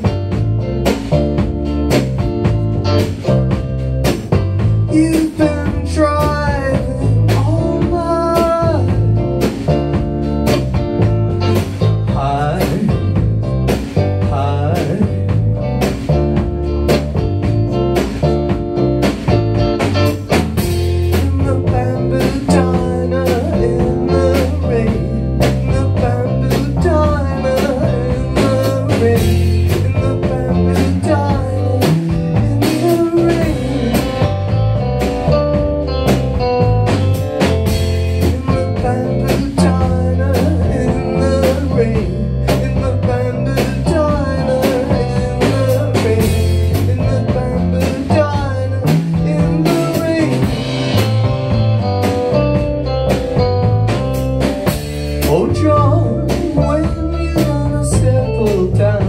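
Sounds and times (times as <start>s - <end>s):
bass guitar: 0.0s - 59.0s
drum kit beat: 0.0s - 59.0s.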